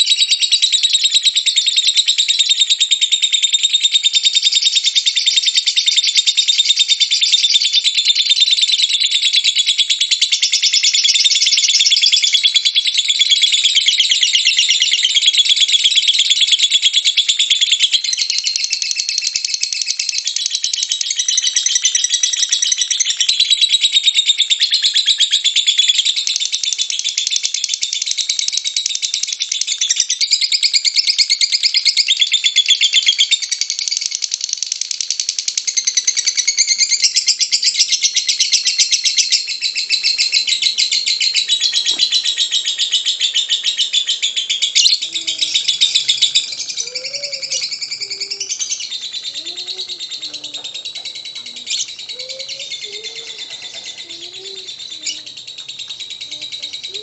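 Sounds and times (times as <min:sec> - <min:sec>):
lovebird shrill rattling chatter: 0:00.0 - 0:57.0.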